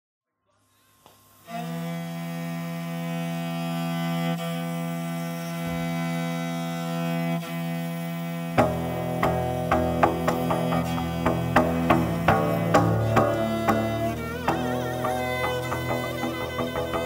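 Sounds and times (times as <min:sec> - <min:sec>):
long bowed fiddle note: 0:01.5 - 0:17.0.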